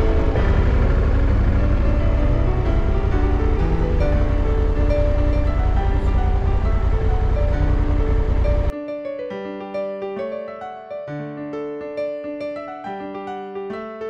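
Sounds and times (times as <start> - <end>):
motorcycle engine rumble: 0.0 - 8.7
wind noise: 0.0 - 8.7
background music: 0.0 - 14.0.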